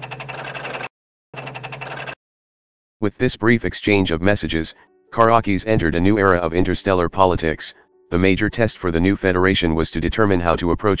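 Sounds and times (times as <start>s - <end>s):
rapid mechanical typing clicks: 0.0s - 2.2s.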